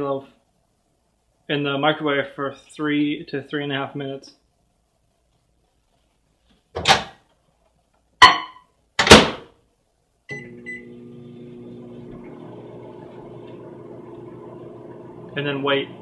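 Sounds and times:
microwave oven humming: 10.3s - 16.0s.

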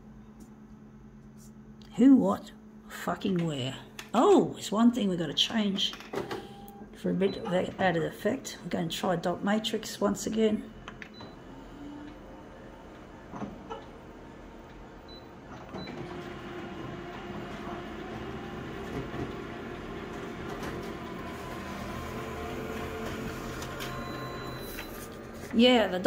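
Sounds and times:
photocopier whirring hum: 0.1s - 26.0s
photocopier beep: 6.3s - 7.7s, 15.1s - 16.3s, 20.2s - 25.9s.

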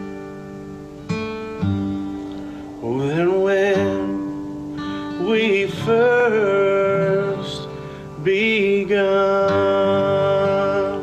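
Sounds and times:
acoustic guitars strumming: 0.0s - 11.0s
man singing: 2.8s - 11.0s.

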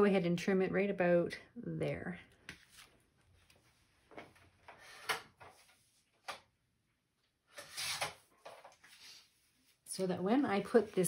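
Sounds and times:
paper rustling and sliding: 2.5s - 6.2s.

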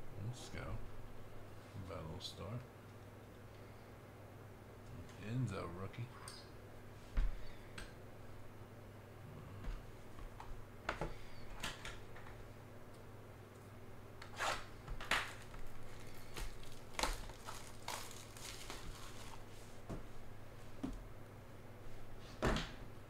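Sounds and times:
steady low hum: 0.0s - 23.0s
card clicks and rustles: 15.0s - 19.4s
hands handling trading cards: 15.1s - 19.4s.

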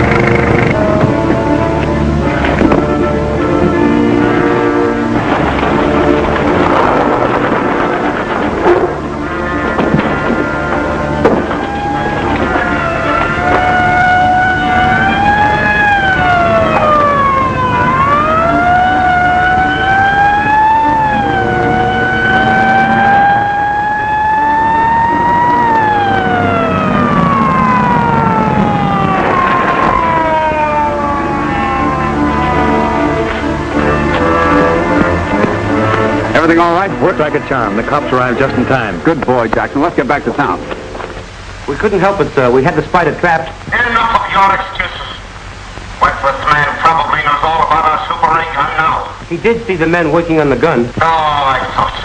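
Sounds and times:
police siren wailing: 0.0s - 38.9s
orchestral film music: 0.0s - 45.2s.

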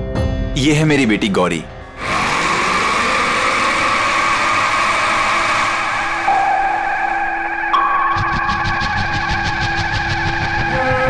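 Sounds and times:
noisy drone rush: 1.1s - 11.0s.

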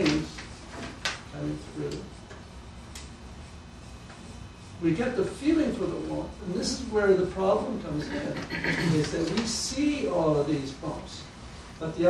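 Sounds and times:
low room hum: 0.0s - 12.0s
chalk ticking on paper: 1.5s - 4.8s.

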